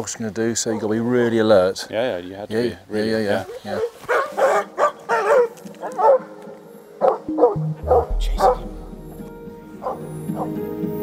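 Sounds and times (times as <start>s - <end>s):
dog barking: 3.7s - 6.4s, 7.0s - 8.6s, 9.8s - 10.6s
music with low held notes: 7.3s - 11.0s.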